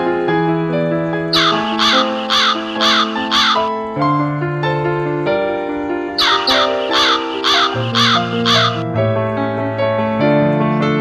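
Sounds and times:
instrumental music with held chords: 0.0s - 11.0s
bird harsh calls: 1.3s - 4.0s, 6.2s - 8.8s.

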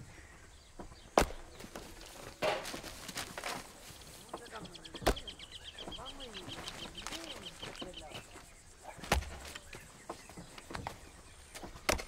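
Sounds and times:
sharp crack: 1.1s - 3.6s
footsteps in dry leaves: 1.6s - 4.6s, 6.2s - 8.4s.

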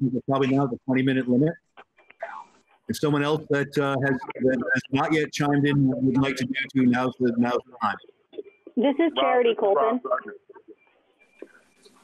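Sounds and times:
faint murmurs: 0.0s - 10.8s
speech over phone line: 0.0s - 10.8s.

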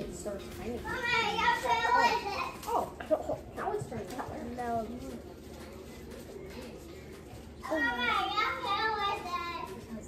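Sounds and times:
faint murmurs: 0.0s - 10.0s.

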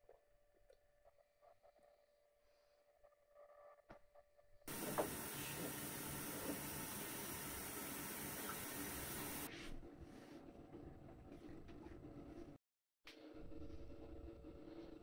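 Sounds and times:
rushing hiss of kitchen activity: 4.7s - 9.5s.

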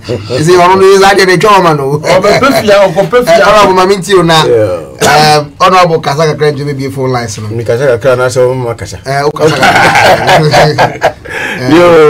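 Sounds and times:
men laughing: 2.1s - 3.3s, 9.4s - 12.0s.

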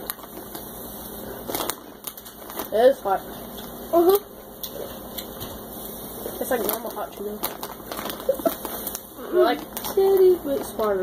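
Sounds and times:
crinkly bag crackling: 0.0s - 11.0s
chips being chewed: 1.4s - 2.8s, 6.5s - 11.0s.

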